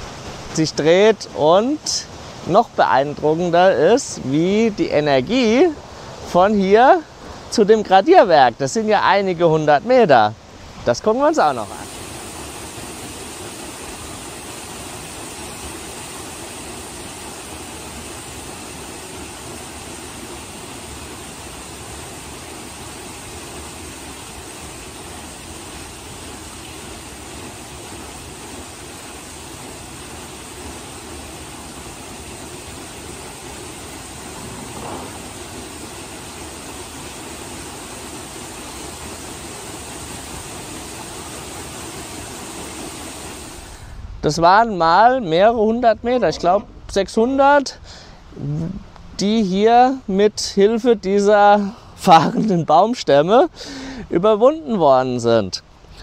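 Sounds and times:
water rushing and splashing: 0.0s - 47.6s
water wheel turning: 11.0s - 43.6s.

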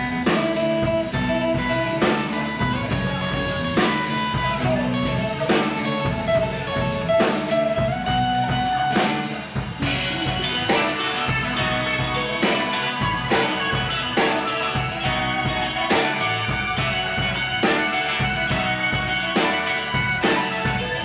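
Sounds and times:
drum kit beat: 0.0s - 21.0s
live rock band playing: 0.0s - 21.0s.

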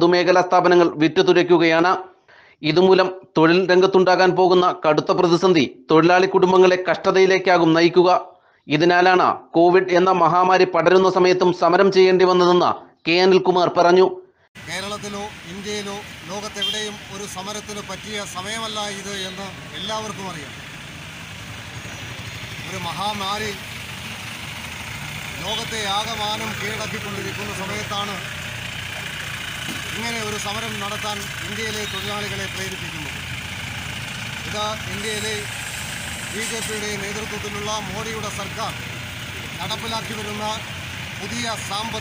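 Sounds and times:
man speaking: 2.6s - 20.6s, 22.6s - 23.7s, 25.4s - 28.3s, 29.9s - 33.2s, 34.4s - 35.6s, 36.3s - 38.8s, 39.6s - 42.0s
engine idling: 14.6s - 42.0s.

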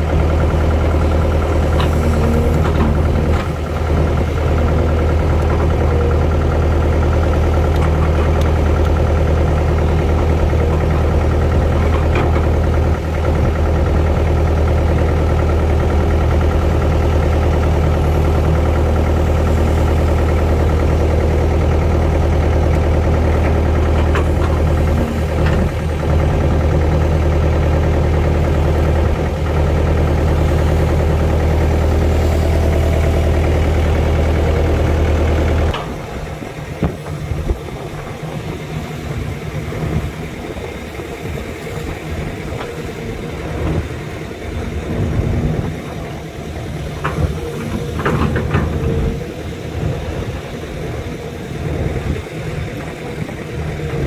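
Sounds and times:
excavator diesel engine: 0.0s - 54.0s.

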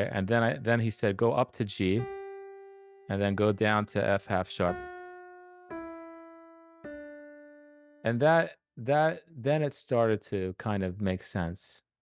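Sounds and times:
piano single notes: 2.0s - 8.2s.

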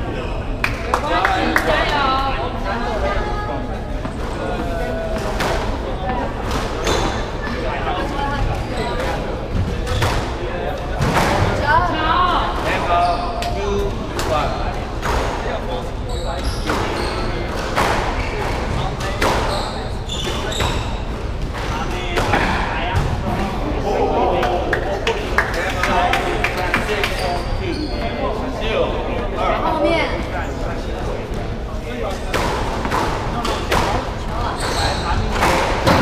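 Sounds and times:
sneakers squeaking on wooden floor: 6.5s - 7.6s, 16.0s - 22.0s, 27.1s - 28.2s, 32.4s - 36.0s.

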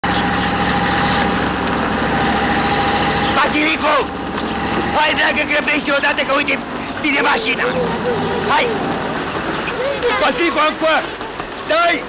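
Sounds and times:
bus engine idling: 0.0s - 12.0s
man calling out: 5.0s - 8.9s.

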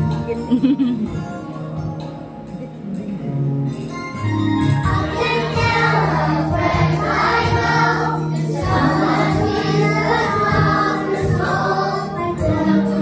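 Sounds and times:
instrumental accompaniment with beat: 0.0s - 13.0s
children's choir singing: 4.8s - 13.0s.

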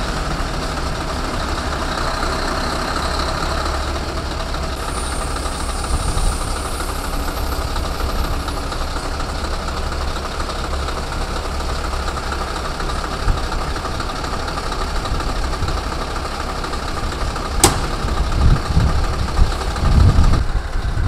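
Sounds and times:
diesel truck engines idling: 0.0s - 21.0s
sharp click: 17.6s - 18.0s.

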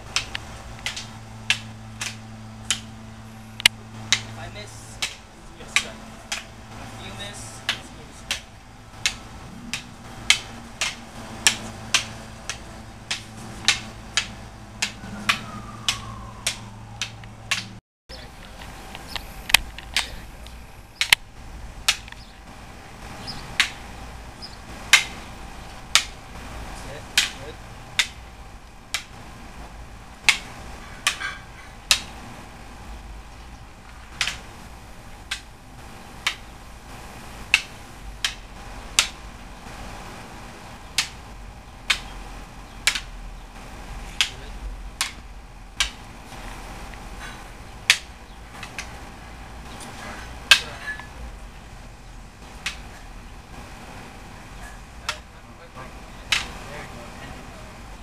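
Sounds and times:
sticks clacking together: 0.1s - 2.9s, 3.6s - 17.7s, 21.8s - 22.3s, 25.9s - 26.2s, 28.0s - 28.2s, 30.2s - 32.1s, 34.1s - 34.5s, 35.2s - 35.5s, 36.2s - 36.5s, 37.5s - 39.2s, 42.8s - 43.1s, 44.1s - 44.4s, 45.0s - 46.1s, 56.3s - 56.6s.

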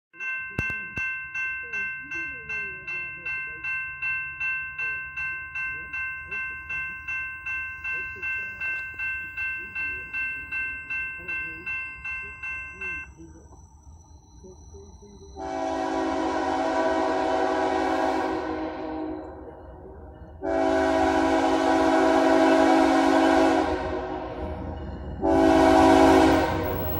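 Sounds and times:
railroad crossing bell ringing: 0.1s - 26.9s.

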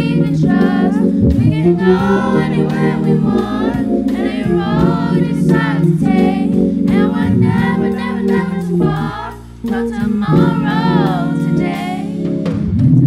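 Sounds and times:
group singing gospel: 0.0s - 12.7s
low held chords: 0.0s - 13.0s.

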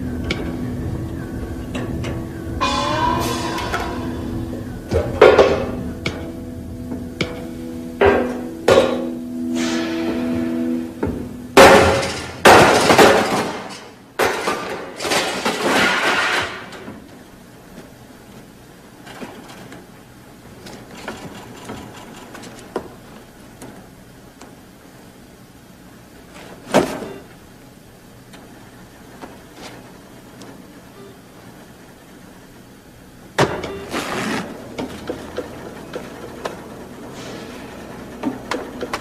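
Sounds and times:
held music chord: 0.0s - 12.0s
louvres crashing and scraping: 11.6s - 16.8s.

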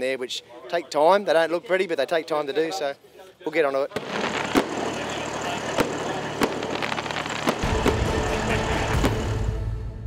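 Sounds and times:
fireworks cracks and bangs: 3.9s - 9.5s.

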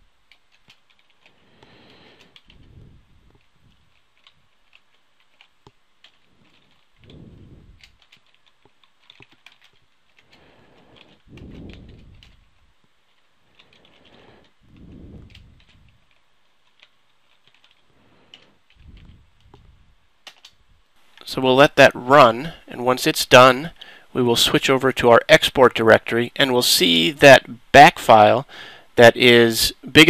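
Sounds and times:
typing on computer keyboard: 0.3s - 2.6s, 3.3s - 7.2s, 7.8s - 12.5s, 13.1s - 19.6s, 20.2s - 20.6s
soft low rumbles: 2.3s - 4.8s, 6.0s - 21.0s.

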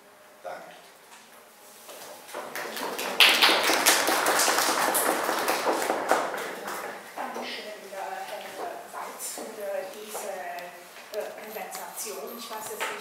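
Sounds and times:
audience applauding: 2.3s - 7.4s.

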